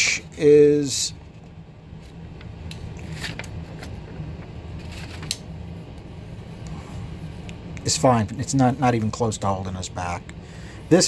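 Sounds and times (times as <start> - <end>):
steady low hum: 0.0 - 11.0
paper sheets rustling: 3.0 - 4.0, 4.8 - 5.4.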